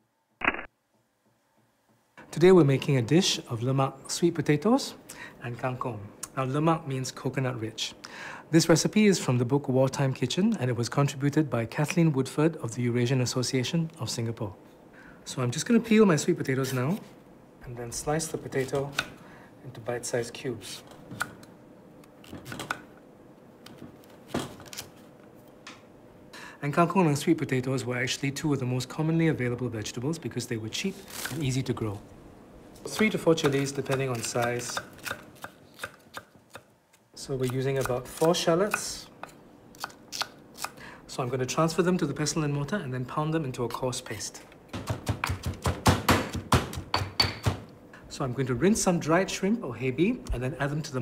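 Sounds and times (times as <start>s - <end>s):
knife chopping on wooden board: 44.7s - 47.6s
stone pestle pounding in mortar: 44.7s - 47.7s.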